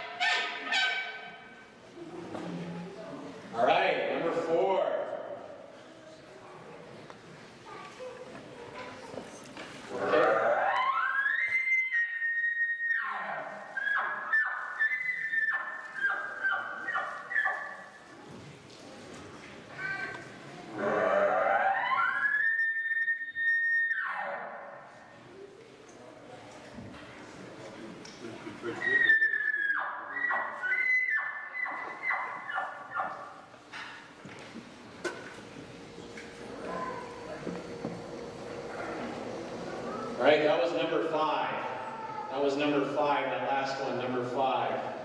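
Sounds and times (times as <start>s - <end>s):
animal game call whistle: 10.5s - 17.8s, 21.4s - 24.4s, 28.9s - 33.2s
elk call whistle and chuckles: 28.6s - 31.0s.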